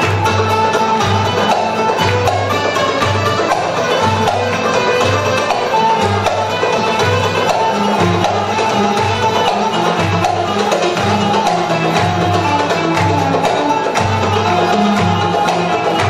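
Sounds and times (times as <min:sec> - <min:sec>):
plucked lutes playing melody: 0:00.0 - 0:16.0.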